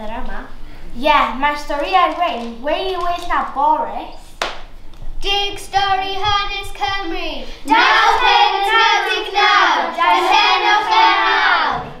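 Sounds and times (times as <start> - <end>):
children singing together: 5.8 - 12.0.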